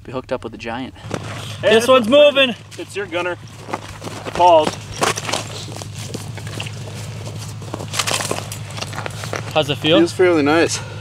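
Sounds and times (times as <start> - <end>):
steady low hum: 0.8 - 11.0
clothing rustling: 1.0 - 9.8
boots crunching on snowy ice: 1.0 - 9.9
boot scuff: 3.4 - 9.6.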